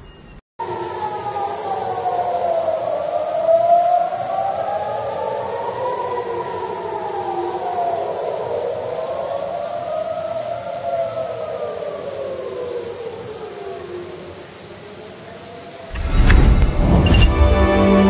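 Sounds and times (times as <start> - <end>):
air-raid sirens wailing: 0.6 - 13.5.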